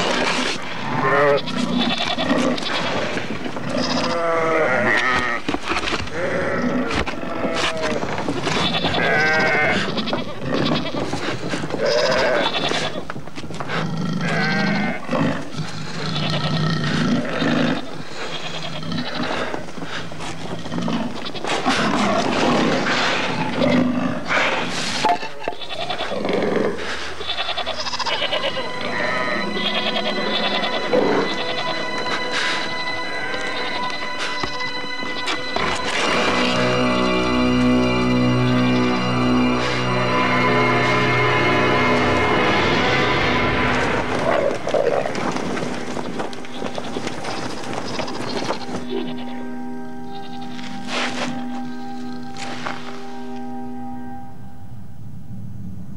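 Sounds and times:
goats bleating: 0:00.8 - 0:13.2, 0:14.2 - 0:19.6, 0:20.6 - 0:22.9, 0:25.2 - 0:50.8
tense music score: 0:27.7 - 0:55.9
sharp music hits: 0:28.3 - 0:46.6.

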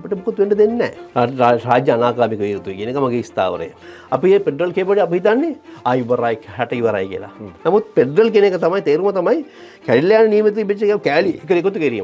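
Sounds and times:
man speaking: 0:00.0 - 0:12.0.

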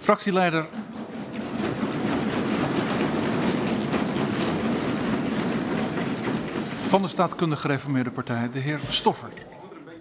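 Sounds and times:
applause from many people: 0:01.3 - 0:07.5.

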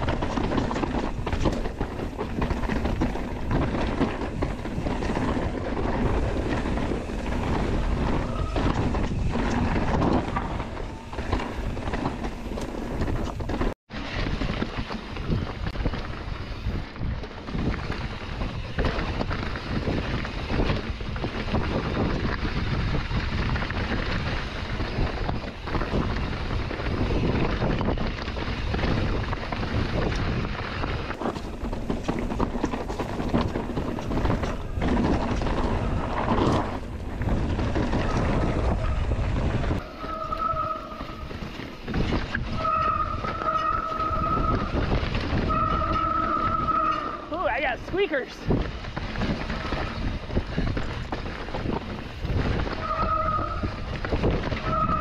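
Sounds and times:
bike tyre roar: 0:00.0 - 0:55.0
wind on microphone: 0:00.0 - 0:55.0
disc brakes squealing: 0:39.8 - 0:47.4, 0:52.8 - 0:53.8.

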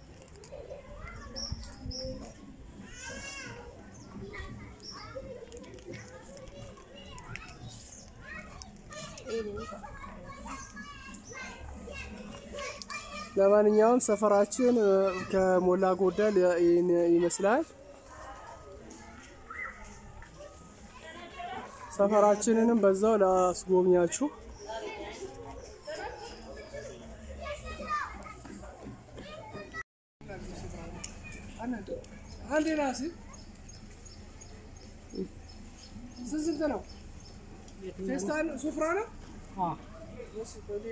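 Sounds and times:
children talking and calling: 0:00.0 - 0:40.9.

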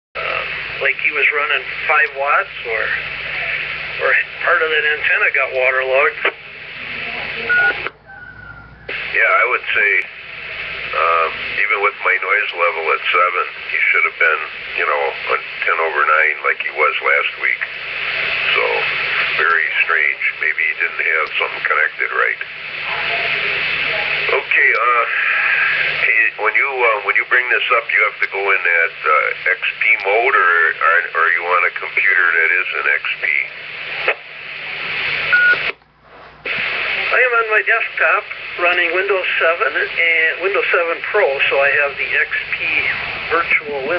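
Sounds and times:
radio hiss: 0:00.2 - 0:43.9.

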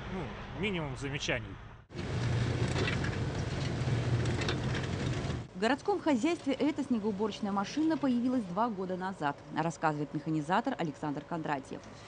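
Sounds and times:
snow loader engine running: 0:01.9 - 0:05.5.

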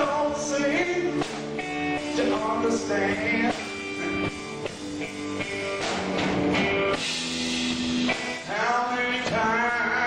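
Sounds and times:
drums: 0:00.0 - 0:10.0
electric guitar playing: 0:00.0 - 0:10.0
person singing: 0:02.0 - 0:03.8, 0:08.4 - 0:10.0.

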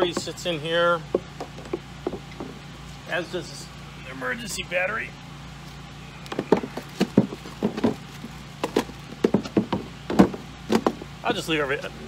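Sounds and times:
knocks and clunks in a cooler: 0:00.0 - 0:00.5, 0:01.1 - 0:02.6, 0:06.3 - 0:11.1
steady low hum: 0:00.0 - 0:12.0.

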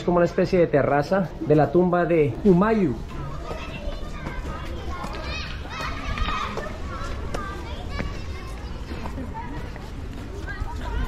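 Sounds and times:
children calling and shouting: 0:00.0 - 0:11.0
people talking: 0:01.5 - 0:11.0.

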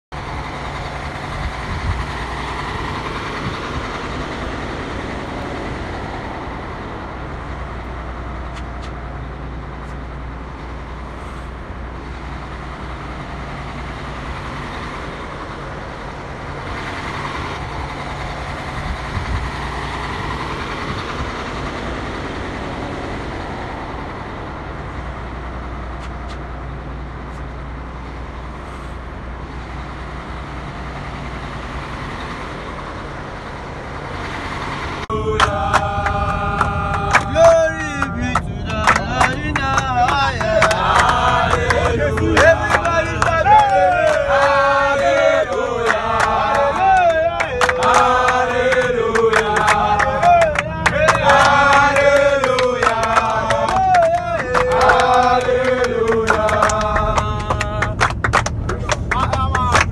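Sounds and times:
diesel bus engine humming: 0:00.1 - 0:59.9.

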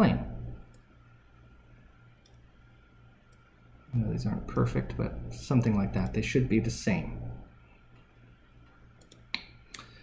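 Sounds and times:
faint low hum: 0:00.0 - 0:10.0
sharp computer clicks: 0:04.5 - 0:04.8, 0:09.0 - 0:09.9.

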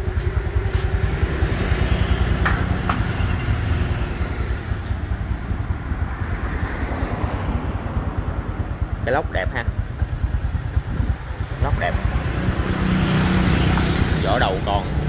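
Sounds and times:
motorcycle engine idling: 0:00.0 - 0:15.0.

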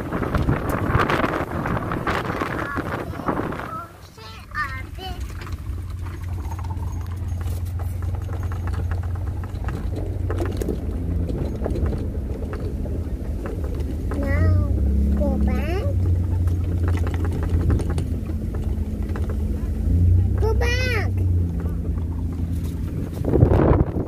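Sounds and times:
wind buffeting microphone: 0:00.0 - 0:24.0
voices: 0:00.7 - 0:23.8.

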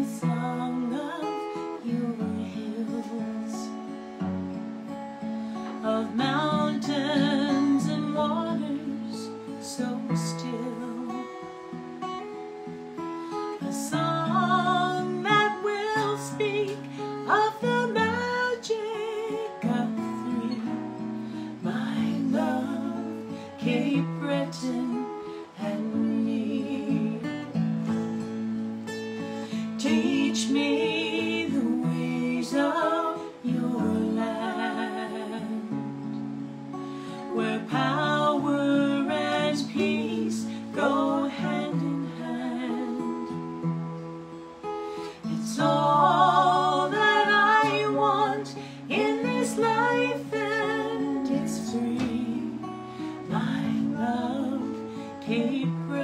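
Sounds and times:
woman singing slowly: 0:00.0 - 0:03.9, 0:05.7 - 0:11.6, 0:13.6 - 0:27.6, 0:29.6 - 0:35.9, 0:37.1 - 0:43.5, 0:45.2 - 0:56.0
acoustic guitar: 0:00.0 - 0:56.0.

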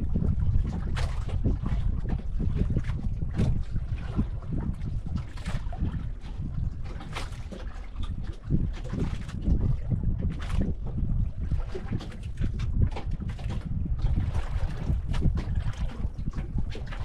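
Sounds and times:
water slapping against wooden hull: 0:00.0 - 0:17.0
wind buffeting microphone: 0:00.0 - 0:17.0.

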